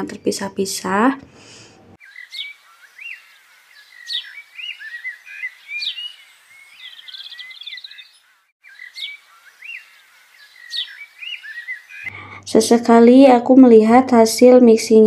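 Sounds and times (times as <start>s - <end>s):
birds chirping: 0.0s - 12.8s
bird trill: 2.0s - 12.4s.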